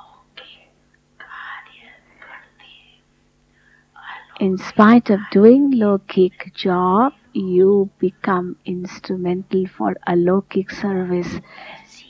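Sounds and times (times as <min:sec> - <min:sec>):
person whispering: 0:00.0 - 0:03.0, 0:04.0 - 0:06.3, 0:10.6 - 0:12.0
steady low hum: 0:00.0 - 0:12.0.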